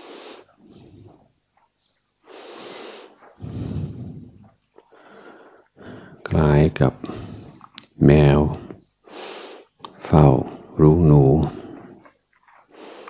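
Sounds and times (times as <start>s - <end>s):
man breathing close to microphone: 0.0s - 1.3s, 2.2s - 6.3s, 7.0s - 7.8s, 8.5s - 9.8s.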